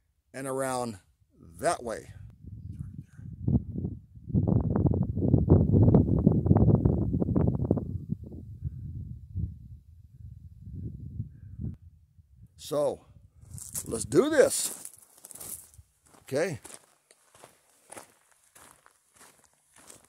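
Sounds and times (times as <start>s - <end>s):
wind buffeting microphone: 2.1s - 14.5s.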